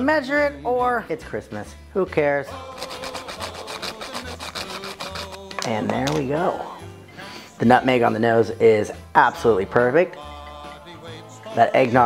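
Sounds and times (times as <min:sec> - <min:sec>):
nutmeg scraping on grater: 0:02.7 - 0:05.5.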